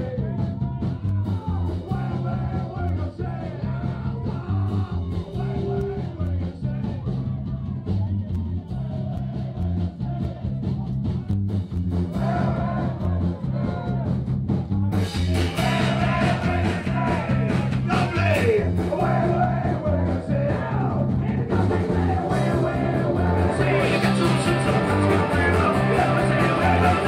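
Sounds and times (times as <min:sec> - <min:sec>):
guitar: 0:00.0 - 0:27.0
live band with singing: 0:00.0 - 0:27.0
pulsing bass line: 0:00.0 - 0:27.0.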